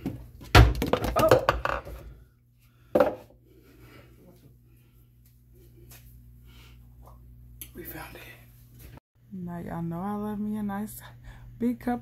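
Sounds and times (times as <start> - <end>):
low steady hum: 1.6 - 12.0.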